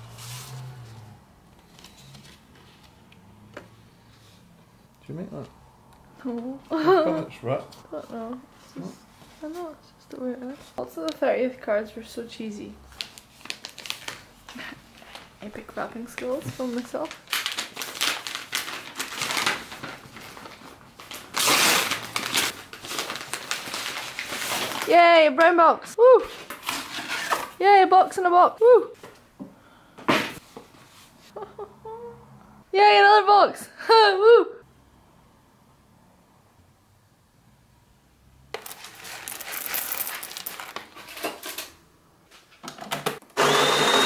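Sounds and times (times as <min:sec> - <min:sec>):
wrapping paper crinkling: 0:12.9 - 0:15.4, 0:16.6 - 0:24.9, 0:38.7 - 0:41.2
coffee beans rattling into hopper: 0:38.6 - 0:41.4.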